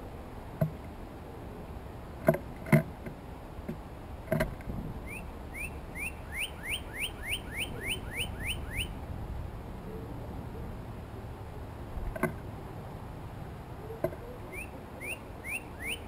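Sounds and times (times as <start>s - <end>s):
bird singing upslurred whistles: 5.0s - 9.0s, 14.5s - 16.0s.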